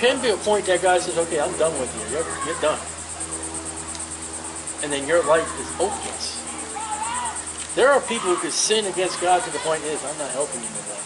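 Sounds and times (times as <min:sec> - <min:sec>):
insects chirping: 0:00.0 - 0:11.0.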